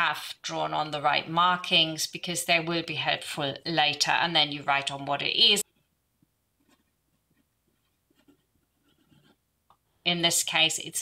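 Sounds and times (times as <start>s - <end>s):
pencil scratching on paper: 6.6s - 9.5s.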